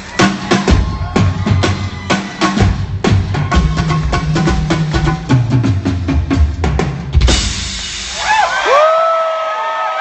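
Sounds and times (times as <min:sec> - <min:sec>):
crowd cheering: 0:00.0 - 0:04.1, 0:08.0 - 0:10.0
drum kit and congas solo: 0:00.0 - 0:08.9
long held whoop: 0:08.2 - 0:10.0.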